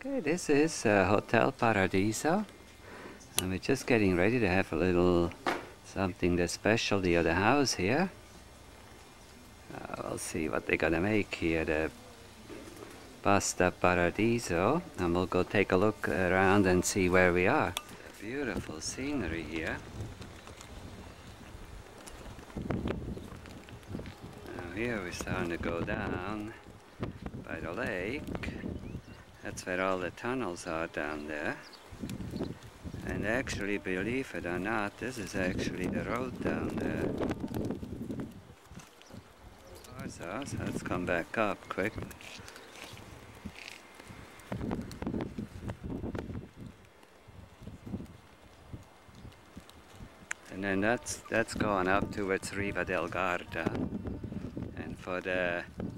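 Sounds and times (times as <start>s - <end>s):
wind rumble on microphone: 13.4s - 55.9s.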